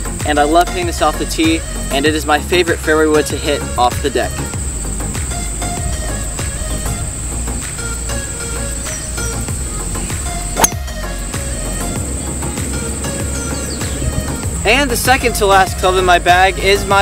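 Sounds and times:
background music: 0.0s - 17.0s
high insect trill: 0.0s - 17.0s
golf club striking ball: 10.2s - 14.5s.

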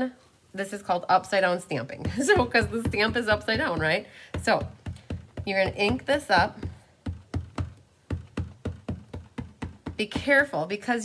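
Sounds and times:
ink pad tapping on stamp: 2.0s - 10.4s.

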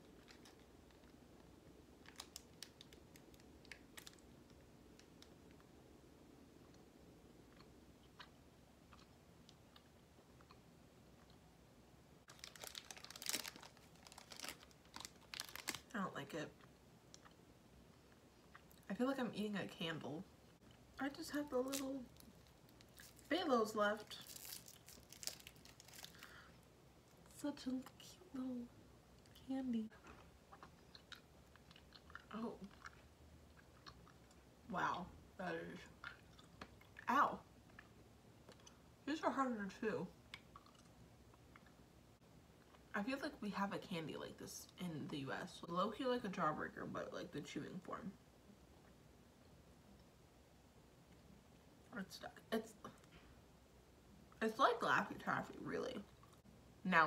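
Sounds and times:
wrapper crinkling: 2.0s - 5.1s, 12.3s - 15.9s, 21.6s - 23.4s, 24.0s - 26.5s
faint chewing: 6.6s - 11.5s, 16.5s - 18.9s, 29.2s - 34.5s, 35.8s - 38.9s, 40.3s - 41.8s, 56.1s - 56.5s.

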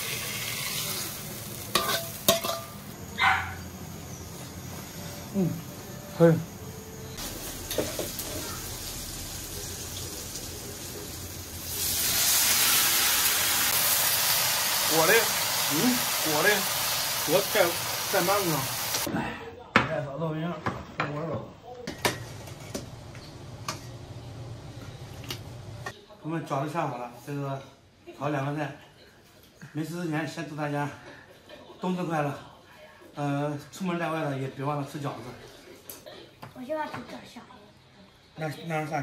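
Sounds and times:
greens sizzling in a wok: 0.0s - 19.1s.

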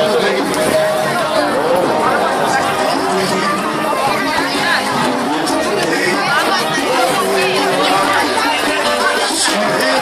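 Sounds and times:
crowd chatter: 0.0s - 10.0s
salsa music: 0.0s - 10.0s.

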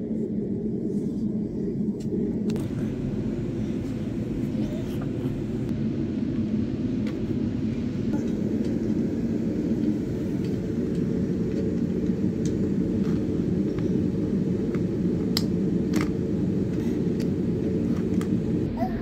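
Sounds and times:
low background rumble: 0.0s - 19.0s.

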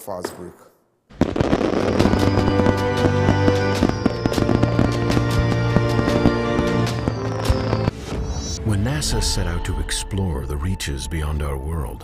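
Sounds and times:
fireworks banging and crackling: 0.2s - 7.9s
music: 1.2s - 12.0s.

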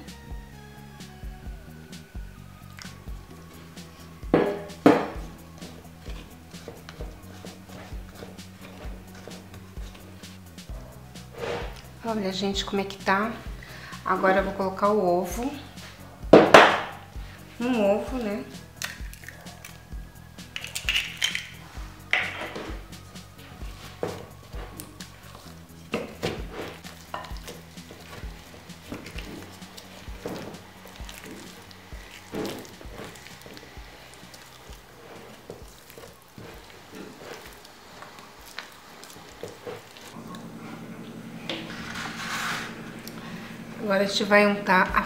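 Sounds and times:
background music: 0.0s - 45.0s
wooden spoon scraping glass bowl: 41.4s - 43.7s.

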